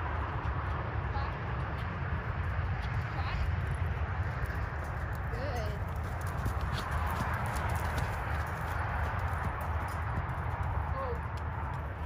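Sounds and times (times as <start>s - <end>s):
constant low noise: 0.0s - 12.0s
hoofbeats on soft sand: 0.2s - 12.0s.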